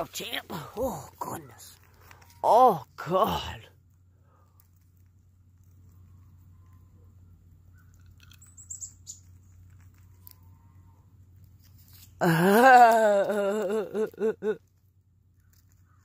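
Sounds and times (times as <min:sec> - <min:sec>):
chipmunk scratching and rustling: 0:01.2 - 0:02.4, 0:03.9 - 0:12.2, 0:14.6 - 0:16.0
chipmunk high chirps and clicks: 0:05.6 - 0:10.7, 0:15.3 - 0:16.0.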